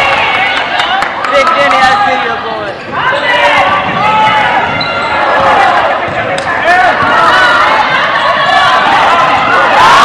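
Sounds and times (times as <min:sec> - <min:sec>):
spectators' voices: 0:00.0 - 0:10.0.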